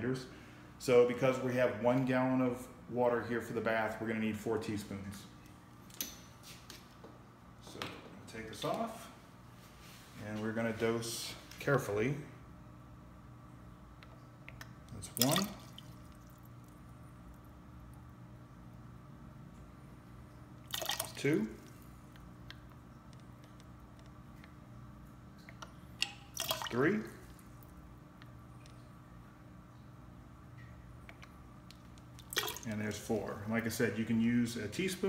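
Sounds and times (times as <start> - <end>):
steady low hum: 0.0 - 35.0
liquid splash into water: 15.2 - 16.4, 20.7 - 21.2, 25.4 - 27.0, 32.2 - 32.7.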